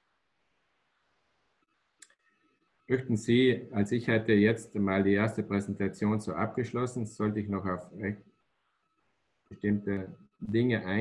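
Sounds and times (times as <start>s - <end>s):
man's voice: 2.9s - 8.2s, 9.5s - 11.0s.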